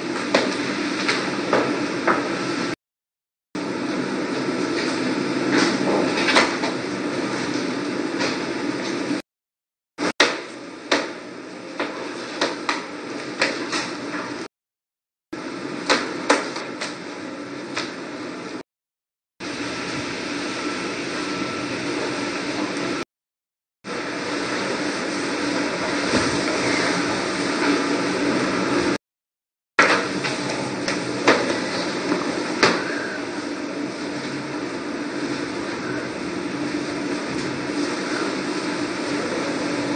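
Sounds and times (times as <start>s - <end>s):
room noise: 23.9s - 29.0s, 29.8s - 39.9s
steady background noise: 29.8s - 39.9s.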